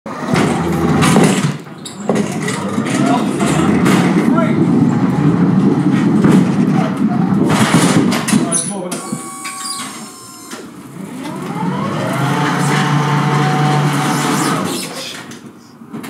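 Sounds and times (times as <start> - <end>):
muffled voices: 1.6 - 10.0
low rumble: 2.3 - 8.3.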